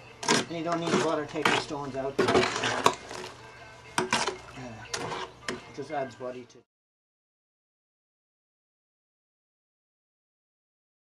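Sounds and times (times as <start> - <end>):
spade scraping metal wheelbarrow: 0.2 - 3.4, 4.0 - 5.8.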